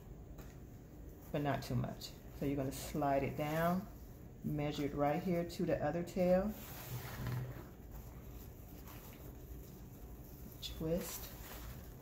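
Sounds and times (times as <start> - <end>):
ribbon rustling on wooden dowels: 0.2 - 12.0.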